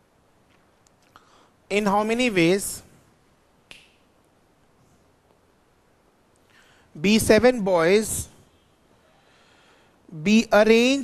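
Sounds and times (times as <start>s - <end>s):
sharp click: 3.7s - 4.0s.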